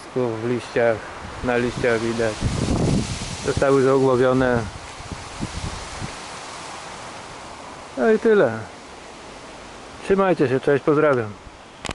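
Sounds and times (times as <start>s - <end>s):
outdoor background hiss: 0.0s - 11.9s.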